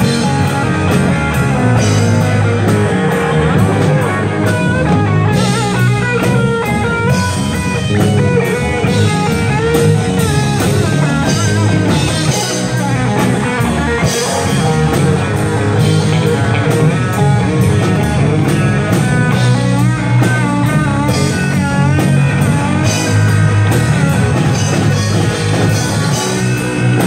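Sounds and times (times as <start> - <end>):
bass guitar: 0.0 - 27.0
drum kit: 0.0 - 27.0
electric guitar lead: 0.0 - 27.0.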